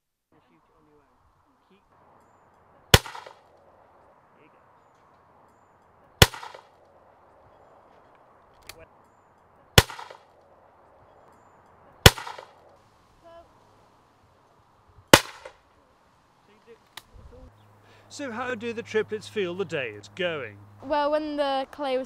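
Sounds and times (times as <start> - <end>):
shotgun shots: 2.9 - 3.5, 6.2 - 6.7, 9.8 - 10.3, 12.0 - 12.6, 15.1 - 15.6.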